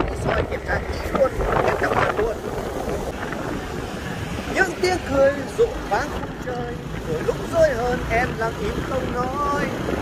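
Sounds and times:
man talking: 0.0 - 3.1, 4.5 - 9.9
wind rumble on microphone: 0.0 - 10.0.

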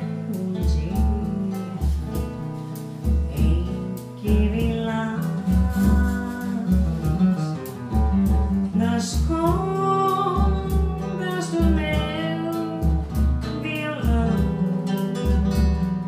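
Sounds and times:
nylon-string guitar: 0.0 - 16.0
woman singing: 0.0 - 16.0.

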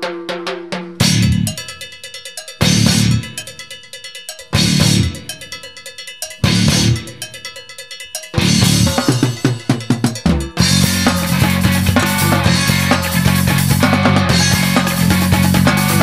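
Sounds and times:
fast drums: 0.0 - 16.0
metal band playing: 1.0 - 16.0
repeated pitched notes: 8.4 - 16.0.

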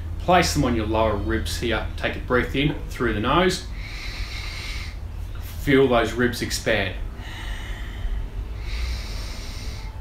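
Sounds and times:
low steady rumble: 0.0 - 10.0
man breathing through nose: 3.7 - 5.6, 7.1 - 10.0.

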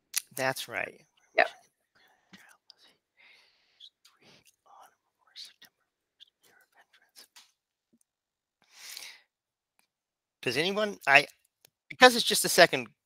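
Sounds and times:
faint whispering: 2.3 - 3.0, 3.7 - 7.4.

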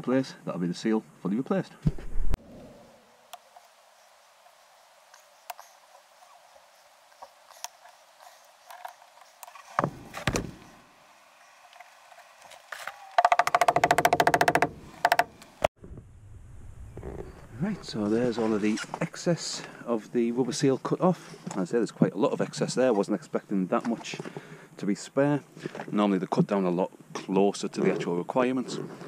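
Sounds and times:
fast buzzing rattle: 13.2 - 15.4.

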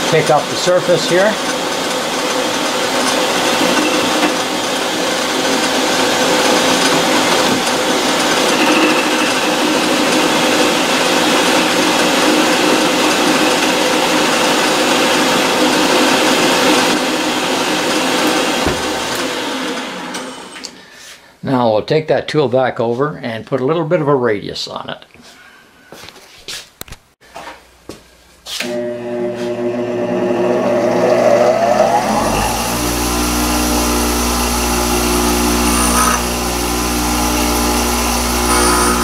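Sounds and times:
lathe machine whir: 0.0 - 20.8, 28.6 - 39.0
hiss of metal cutting: 7.8 - 11.2, 35.6 - 36.2.

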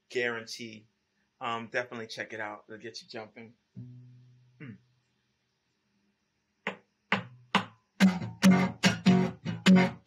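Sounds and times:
acoustic guitar strumming: 3.8 - 4.5, 7.2 - 10.0.

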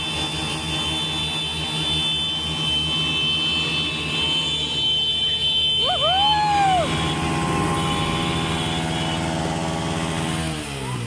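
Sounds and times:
motorcycle engine revving: 6.6 - 11.0.

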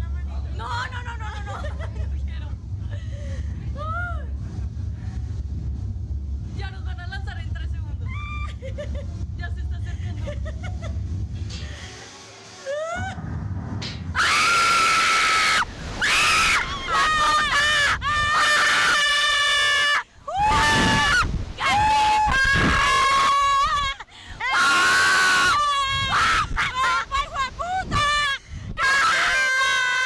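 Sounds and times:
women screaming: 8.1 - 8.6, 14.2 - 30.0.

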